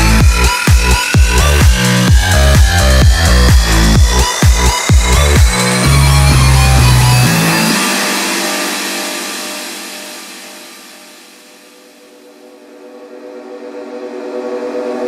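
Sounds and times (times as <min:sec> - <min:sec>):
electronic dance music: 0:00.0 - 0:15.0.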